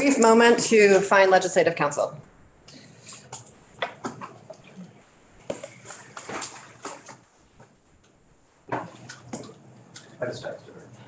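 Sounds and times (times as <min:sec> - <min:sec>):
papers rustling: 0:05.4 - 0:07.8.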